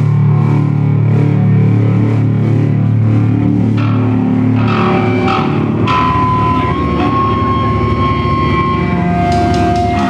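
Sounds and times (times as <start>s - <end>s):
electric guitar and bass drone: 0.0s - 10.0s
steady high whine: 0.0s - 10.0s.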